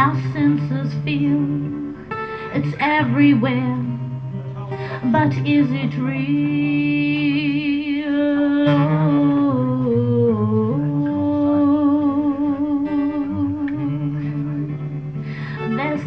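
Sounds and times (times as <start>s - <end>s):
acoustic guitar: 0.0s - 16.0s
woman humming: 5.0s - 16.0s.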